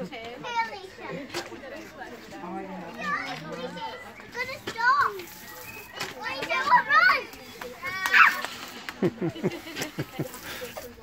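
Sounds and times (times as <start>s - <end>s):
children squealing and shrieking: 3.8s - 8.7s.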